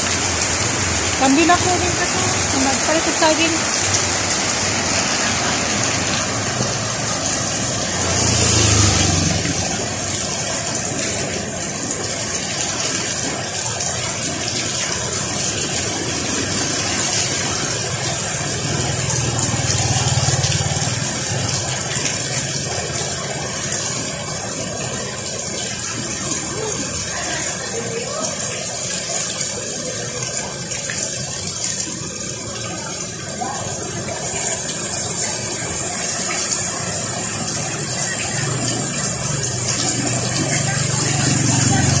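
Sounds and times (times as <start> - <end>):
motorcycle engines passing: 0.0 - 12.3, 15.5 - 27.6, 33.6 - 42.0
heavy rain on a wet street: 0.0 - 42.0.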